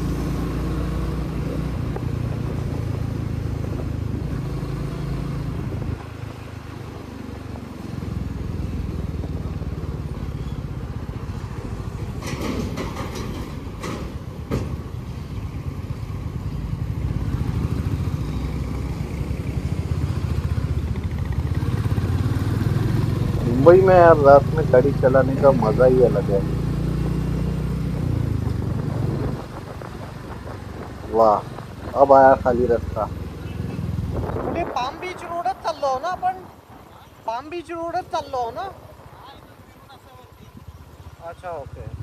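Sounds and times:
motorcycle engine running: 0.0 - 12.3, 15.3 - 34.5.

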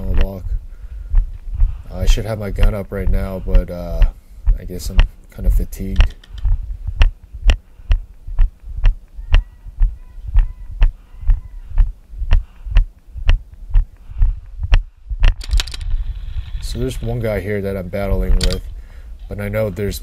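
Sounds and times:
footsteps walking: 0.0 - 19.3.

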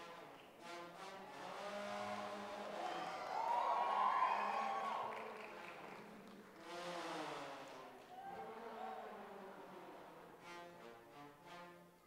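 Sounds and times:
brass horns holding notes: 0.0 - 3.5, 6.6 - 12.0.

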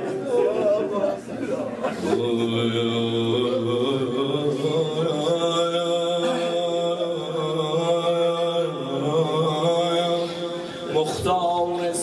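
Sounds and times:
man chanting a lament: 1.9 - 12.0.

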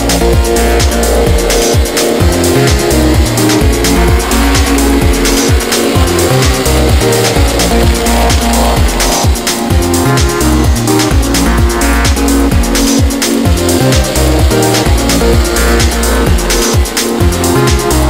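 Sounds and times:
electronic dance music: 0.0 - 18.0
kick drum beat: 0.0 - 18.0
pulsing bassline: 0.0 - 18.0.

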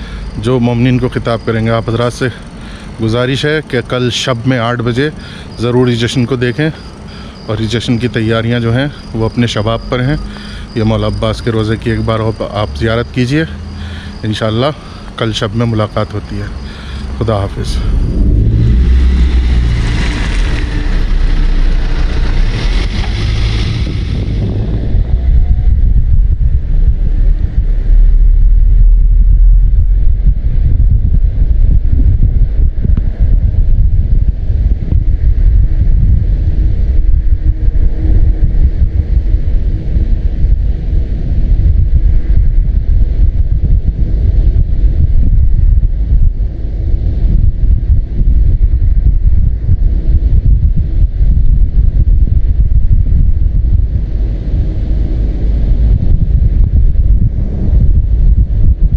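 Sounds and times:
vehicle running noise: 0.0 - 58.9
wind buffeting microphone: 0.0 - 58.9.

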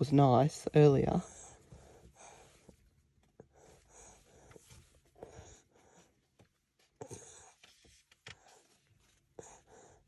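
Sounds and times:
baby breathing quietly: 1.3 - 10.0.

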